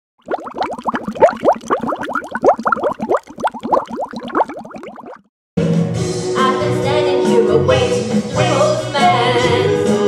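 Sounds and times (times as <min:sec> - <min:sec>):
bubbling blips sound effect: 0:00.2 - 0:05.3.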